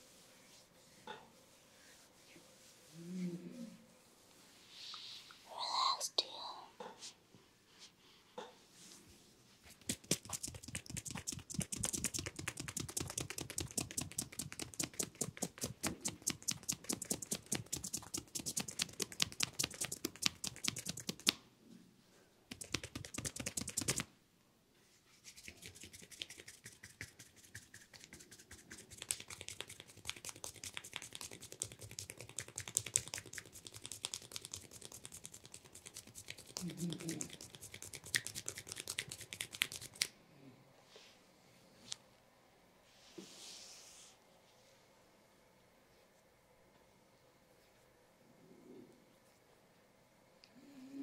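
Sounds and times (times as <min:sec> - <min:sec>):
hands striking skin in massage: 0:09.8 - 0:21.4, 0:22.5 - 0:24.1, 0:25.7 - 0:36.6.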